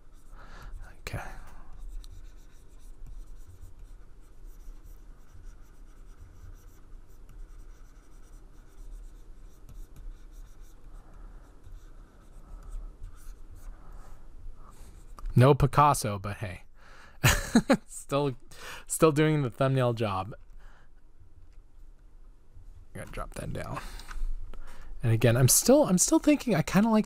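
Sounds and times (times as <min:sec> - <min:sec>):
stylus scratching and tapping tablet: 0:00.0 - 0:15.4
faint low hum: 0:00.0 - 0:27.0.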